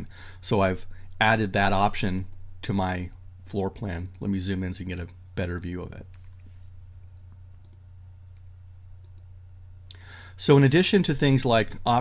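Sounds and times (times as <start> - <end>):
low hum: 0.0 - 10.1
computer mouse clicks: 7.2 - 7.8, 9.0 - 9.3.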